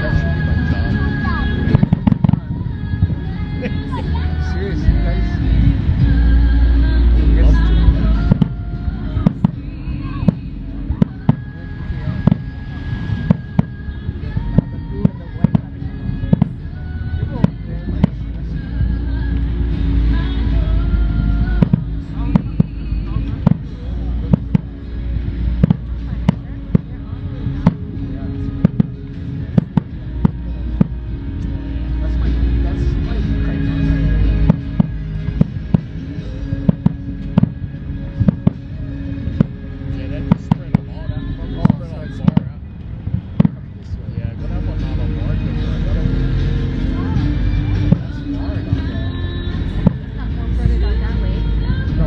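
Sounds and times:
music playing: 0.0s - 52.0s
fireworks bursting: 1.6s - 3.2s, 8.1s - 13.8s, 21.5s - 24.8s, 25.5s - 27.9s, 28.6s - 31.0s, 41.6s - 43.7s.

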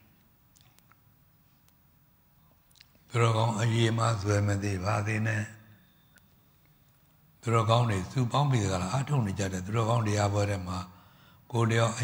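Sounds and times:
man chanting: 7.4s - 12.0s.

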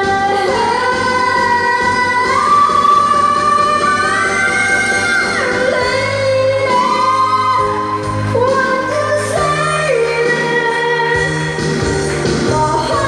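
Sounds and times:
backing music with bass line: 0.0s - 13.0s
person singing into microphone: 0.0s - 13.0s.

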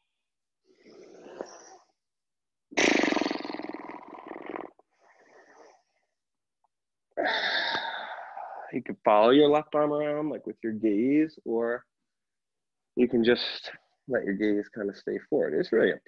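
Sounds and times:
person breathing deeply: 7.2s - 8.7s.

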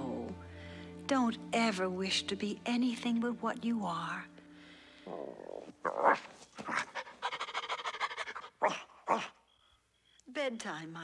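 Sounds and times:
cartoon dog panting: 6.8s - 8.6s.

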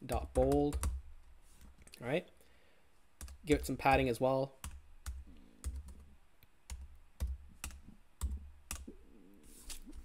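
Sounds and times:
keyboard typing: 3.2s - 4.0s, 4.6s - 9.0s.

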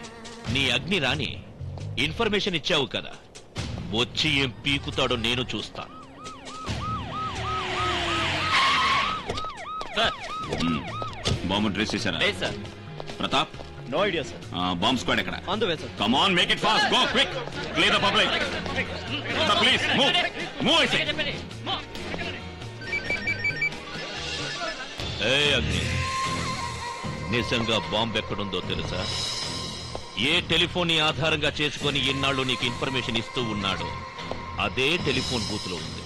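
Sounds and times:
vehicles rumbling: 0.0s - 16.0s
background film music: 0.0s - 36.0s
police siren yelping: 5.5s - 11.5s, 22.8s - 24.6s
short high electronic beeps: 22.8s - 24.6s.

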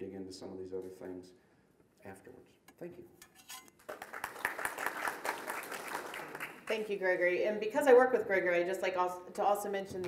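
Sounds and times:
audience applause: 3.9s - 6.8s.

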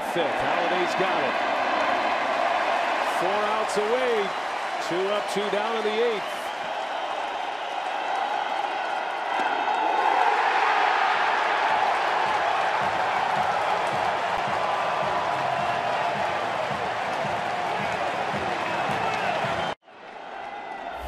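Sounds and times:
stadium crowd cheering and applauding: 0.0s - 21.0s.

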